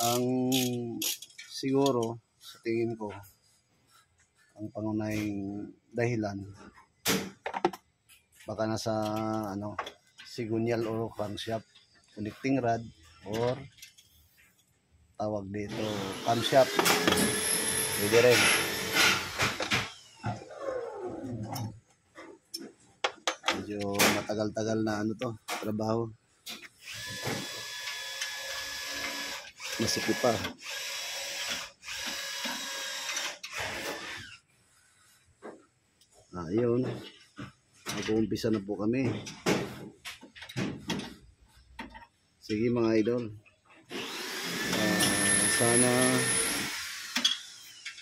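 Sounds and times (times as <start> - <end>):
hand tools clicking on metal: 0.0 - 2.1
power tool whining: 15.7 - 21.0, 26.8 - 34.4, 43.9 - 48.0.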